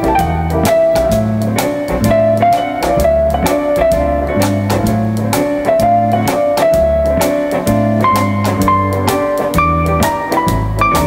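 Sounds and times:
drum kit steady beat: 0.0 - 11.0
guitar: 0.0 - 11.0
held lead melody line: 0.0 - 11.0
walking electric bass: 0.0 - 11.0.

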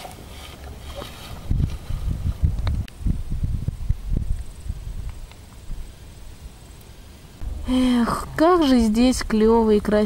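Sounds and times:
wind buffeting microphone: 1.3 - 5.9.

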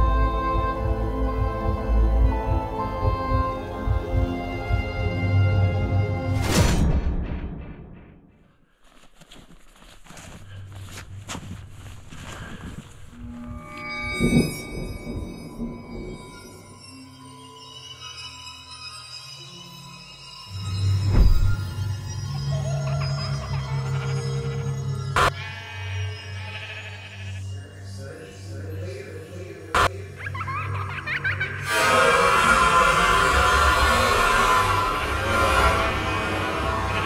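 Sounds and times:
footsteps crunching in snow: 8.7 - 13.6
ram bleating: 23.2 - 27.6
low droning horror score: 27.2 - 37.0.

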